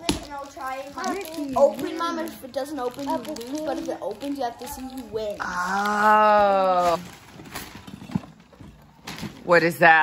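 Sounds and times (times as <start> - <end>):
wrapping paper rustling and tearing: 0.0 - 8.4.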